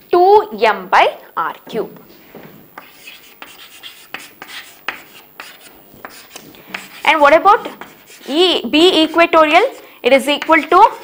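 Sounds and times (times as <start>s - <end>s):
chalk scratching on chalkboard: 2.8s - 11.0s.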